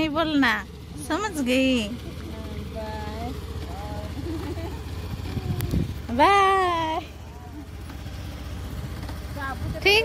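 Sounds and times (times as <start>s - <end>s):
scooter engine running: 0.0s - 10.0s.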